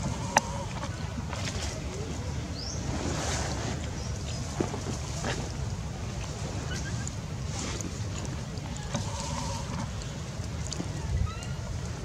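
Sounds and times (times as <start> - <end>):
faint clicks: 7.8 - 11.9.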